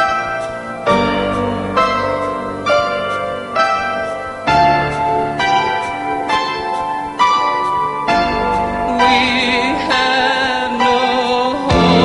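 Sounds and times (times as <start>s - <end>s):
piano playing slow chords: 0.0s - 12.0s.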